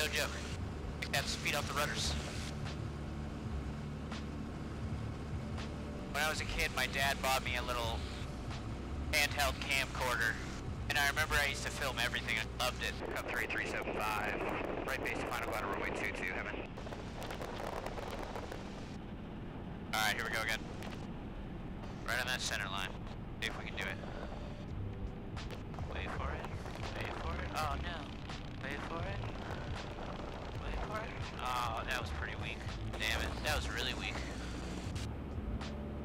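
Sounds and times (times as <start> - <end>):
plane engine and propeller: 0.0 - 36.0.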